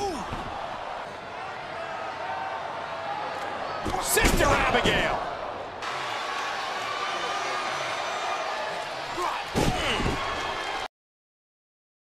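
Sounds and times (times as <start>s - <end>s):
arena crowd noise: 0.0s - 10.9s.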